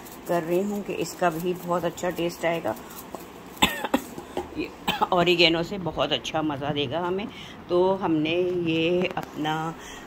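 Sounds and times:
person coughing: 3.6 - 5.2.

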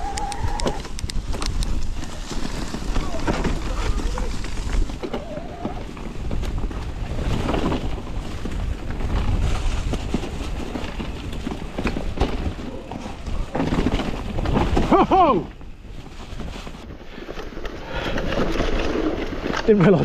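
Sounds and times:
wind rushing over microphone: 0.0 - 19.6
tyres rolling through dry leaves: 0.0 - 20.0
bike knocks and rattles: 0.8 - 20.0.

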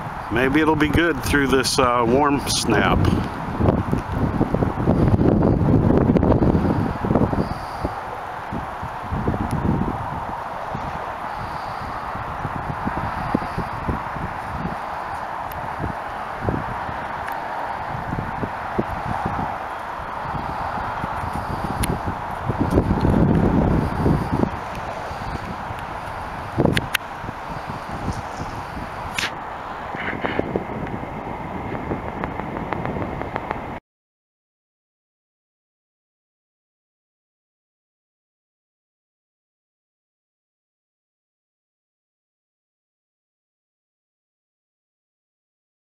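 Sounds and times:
wind buffeting microphone: 0.0 - 33.8
steady hiss: 10.5 - 33.5.

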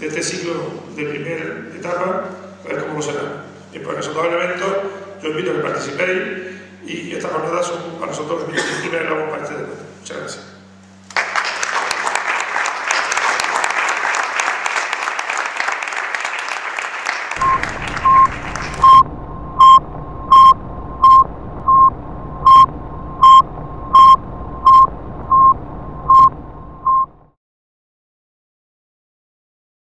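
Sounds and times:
audience applauding: 11.1 - 19.0
loud electronic beeps: 17.4 - 27.3
low hum: 17.4 - 27.4.

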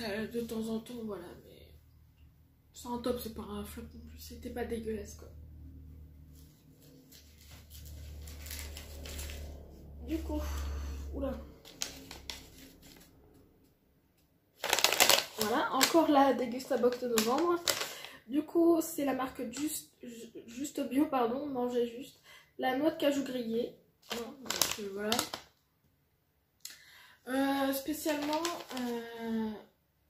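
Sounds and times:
paper pouch crinkling: 6.8 - 9.7, 11.5 - 13.2, 14.6 - 18.2, 24.0 - 25.6, 27.8 - 29.1
food packaging rustling and clicking: 14.6 - 18.0, 24.0 - 25.5, 27.9 - 29.0.

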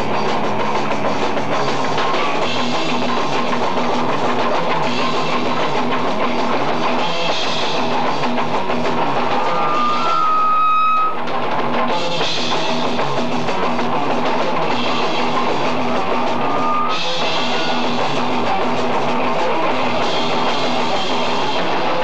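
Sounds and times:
punk rock band playing: 0.0 - 22.0
held high guitar note: 8.7 - 11.4, 15.4 - 18.6.

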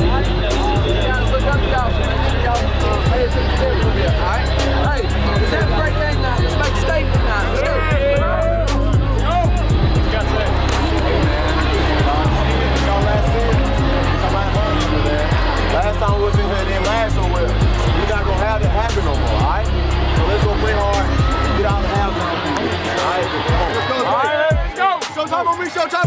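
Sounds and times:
music with heavy bass line: 0.0 - 26.0.

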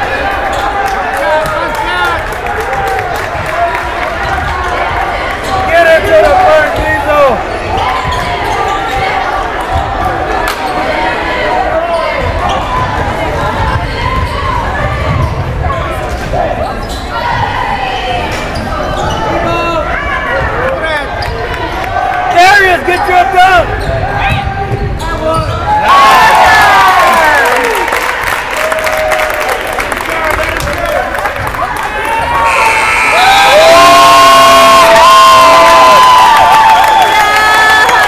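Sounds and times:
echoing voices in a hall: 0.0 - 38.0.

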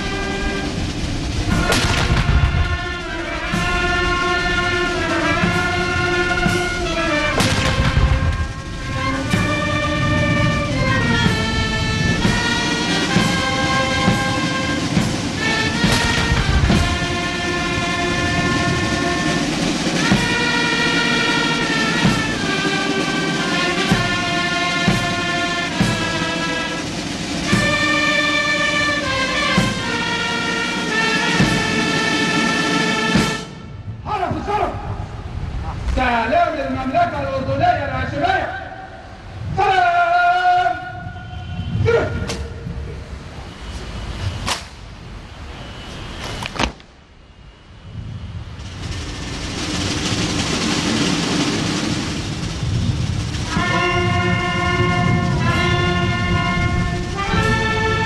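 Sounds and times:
brass band playing slow chords: 0.0 - 34.0, 49.6 - 58.0
artillery boom: 1.3 - 4.9, 5.6 - 11.5
rifles cracking: 1.5 - 3.0, 7.3 - 8.6
shouted word of command: 34.0 - 35.0, 35.7 - 42.6.

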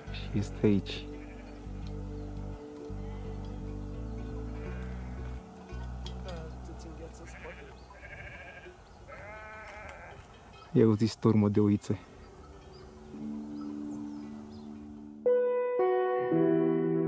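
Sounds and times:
sheep bleating: 1.0 - 1.7, 4.4 - 5.4, 7.0 - 10.3.

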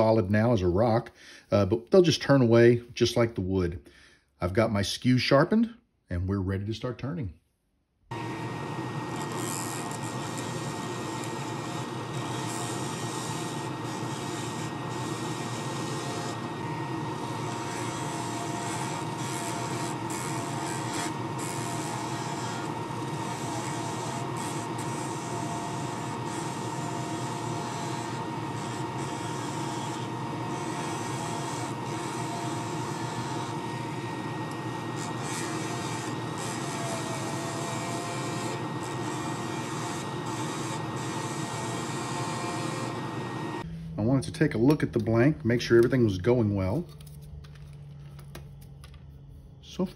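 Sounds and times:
wood lathe whine: 8.1 - 44.2.

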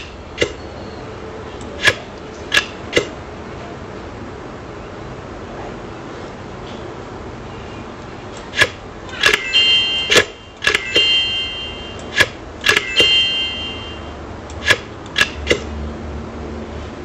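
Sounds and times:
sharp clicks or knocks: 1.6 - 3.2, 8.3 - 11.1, 12.0 - 13.2, 14.5 - 15.7
high metallic ring: 9.1 - 14.2.

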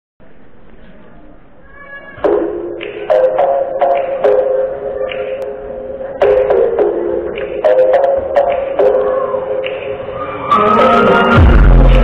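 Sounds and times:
faint audience voices: 0.2 - 12.0.

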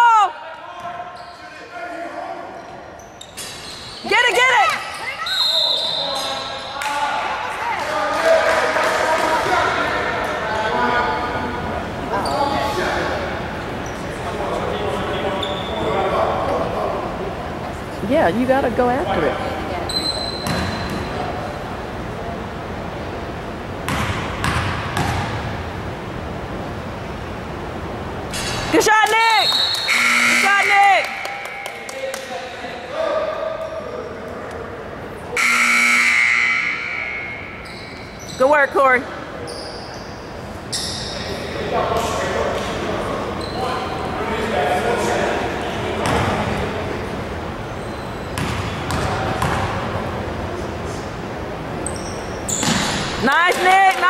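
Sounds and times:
sneakers squeaking on hardwood: 2.6 - 6.4, 15.3 - 15.9, 19.8 - 21.2, 37.4 - 38.7, 39.4 - 41.4, 47.7 - 49.7, 51.8 - 53.2.

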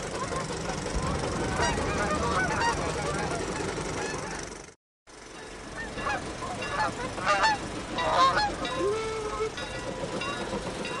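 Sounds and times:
geese honking: 0.1 - 4.5, 5.4 - 10.5.

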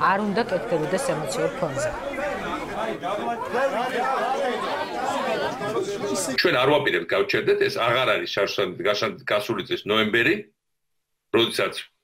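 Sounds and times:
crowd of people talking: 0.0 - 6.9.

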